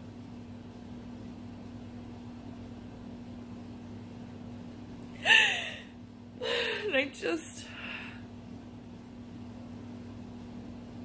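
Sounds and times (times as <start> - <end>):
steady low hum: 0.0 - 11.0
woman crying: 5.2 - 7.1.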